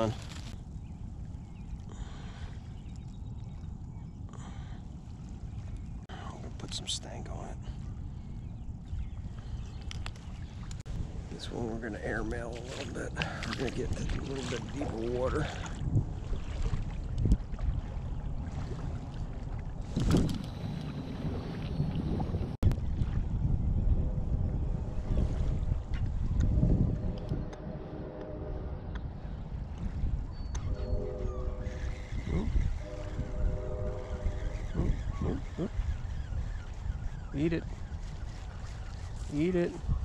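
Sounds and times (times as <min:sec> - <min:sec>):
wind rumbling on microphone: 0:00.0 - 0:40.0.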